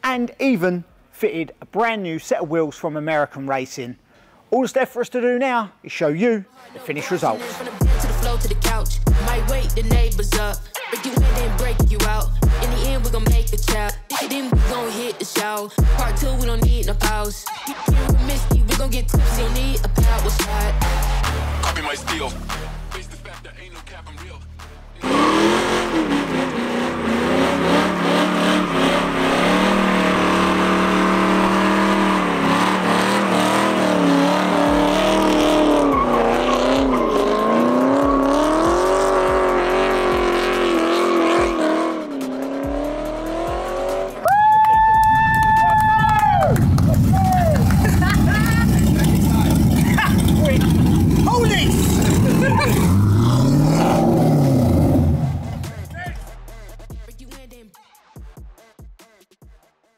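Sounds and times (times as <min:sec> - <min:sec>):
rap music: 0:06.6 - 0:59.9
car engine revving: 0:07.4 - 0:10.6, 0:11.2 - 0:14.0, 0:18.0 - 0:44.2, 0:45.5 - 0:57.1
loud high tyre squeal: 0:25.0 - 0:39.1.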